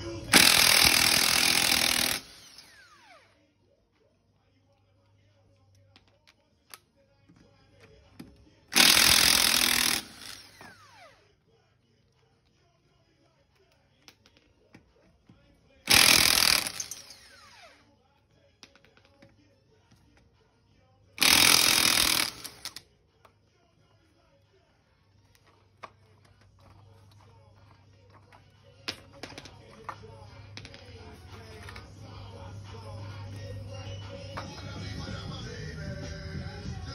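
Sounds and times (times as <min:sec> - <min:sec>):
impact wrench running: 0:00.3 - 0:03.2, 0:08.7 - 0:11.2, 0:15.9 - 0:17.8, 0:21.2 - 0:22.8
motor winding down whine: 0:02.0 - 0:03.3.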